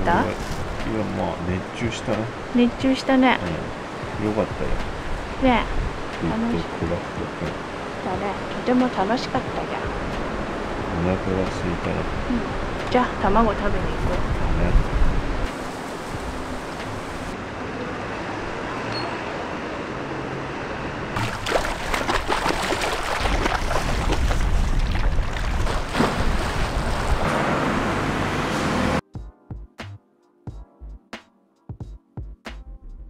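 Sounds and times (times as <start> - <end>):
water splashing against rocks: 21.2 - 27.3
music: 29.0 - 33.0.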